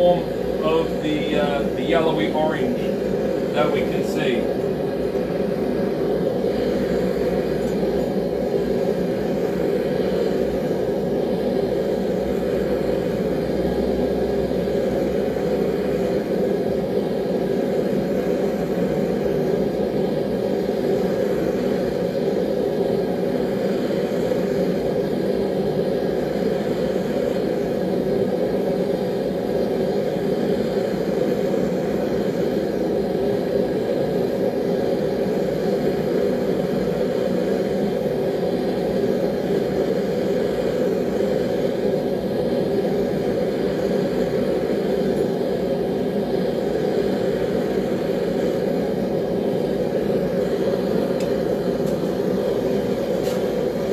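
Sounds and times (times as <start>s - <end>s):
forge running steadily: 0.0s - 53.9s.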